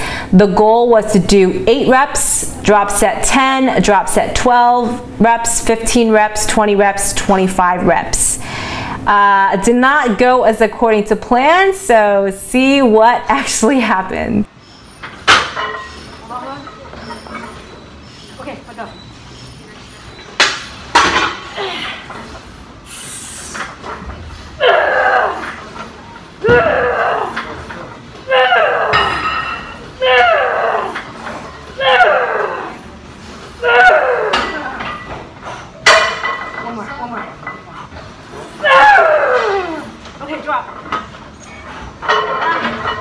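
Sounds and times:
woman grunting loudly: 24.6 - 25.6, 26.4 - 27.4, 28.3 - 29.4, 30.0 - 31.0, 31.8 - 32.8, 33.6 - 34.8
metal weight plates clanking: 40.5 - 43.0.

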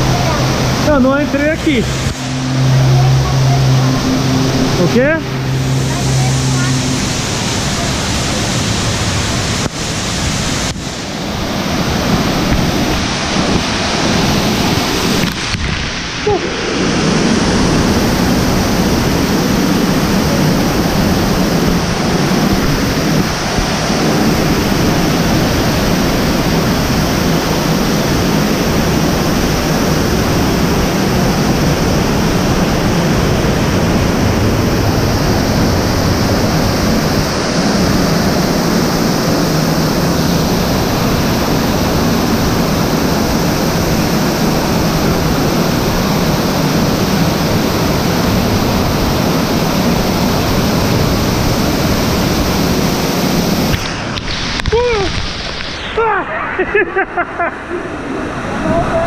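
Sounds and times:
waterfall rushing: 0.0 - 59.0.

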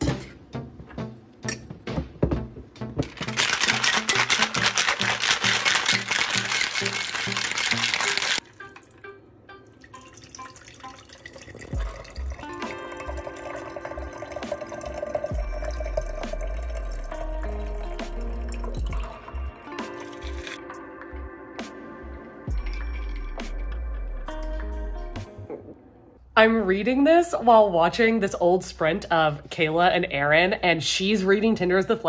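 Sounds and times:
background music: 0.0 - 30.3
cocktail shaker rattling: 3.0 - 8.4
drink pouring into a glass: 3.2 - 9.0, 9.8 - 20.6.

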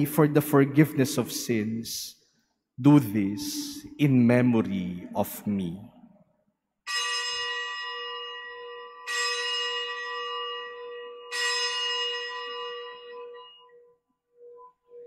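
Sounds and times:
altar bell ringing: 6.9 - 15.0.

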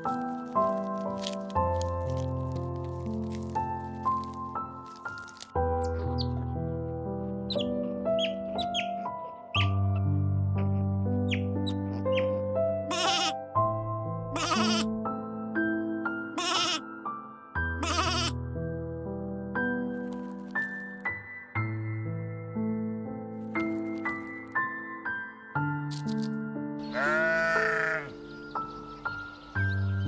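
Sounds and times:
sheep bleating: 12.9 - 13.4, 14.4 - 14.9, 16.4 - 16.8, 17.8 - 18.3, 26.8 - 28.2.

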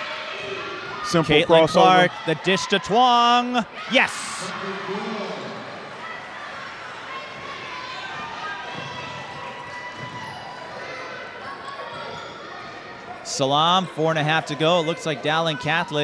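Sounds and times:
crowd cheering: 0.0 - 13.0
murmur of voices: 0.0 - 16.0.

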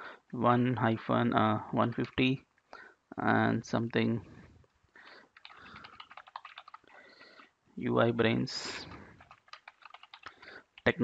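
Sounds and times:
computer keyboard typing: 1.9 - 2.3, 5.2 - 7.4, 8.8 - 11.0.

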